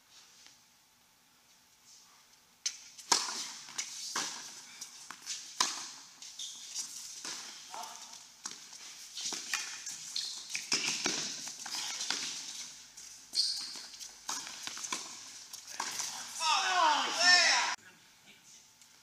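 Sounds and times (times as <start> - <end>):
tennis balls struck with racquets: 2.7 - 6.1.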